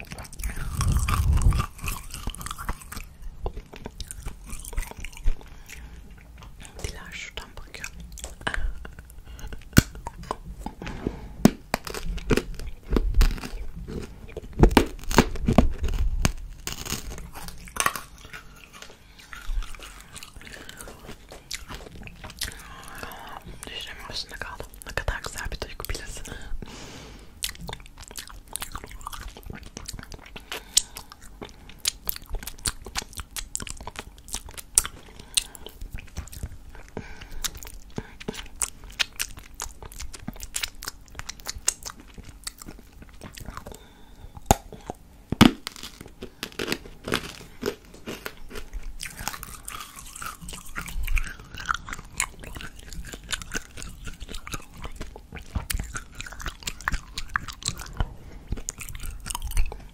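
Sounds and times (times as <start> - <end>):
wet sucking and licking: 0.2 - 3.2.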